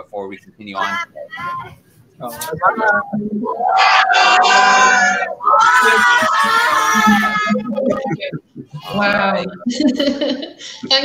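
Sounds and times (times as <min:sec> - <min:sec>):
children shouting together: 0:03.5 - 0:07.8.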